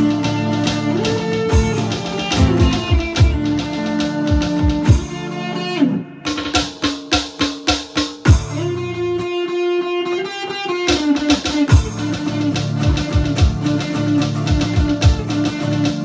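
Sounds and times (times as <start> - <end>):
electronic drum beat: 0.0 - 5.6, 6.2 - 9.0, 10.9 - 16.0
lead electric guitar: 0.0 - 6.4, 8.3 - 16.0
keyboard: 0.0 - 7.3, 10.9 - 16.0
acoustic rhythm guitar: 0.0 - 16.0.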